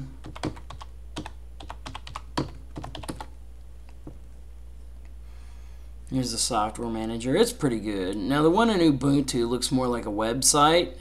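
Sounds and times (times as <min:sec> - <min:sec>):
computer keyboard typing: 0:00.0 - 0:03.4.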